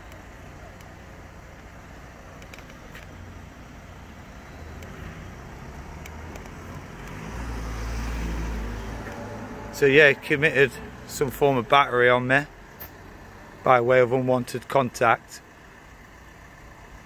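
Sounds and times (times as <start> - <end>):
low rumble of road traffic: 0.0 - 17.0
vehicle engine running close by: 0.0 - 17.0
faint clicks: 4.8 - 5.0, 6.0 - 7.2.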